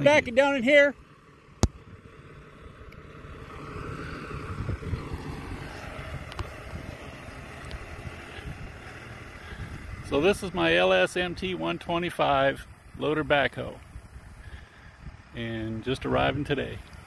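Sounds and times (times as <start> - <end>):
pickup truck driving past: 0.0 - 17.0.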